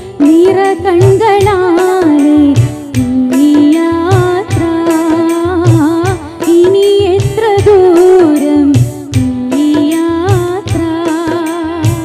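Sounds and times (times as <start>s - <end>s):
drum beat: 0.0s - 12.0s
keyboard: 0.0s - 12.0s
woman singing into a microphone: 0.0s - 12.0s.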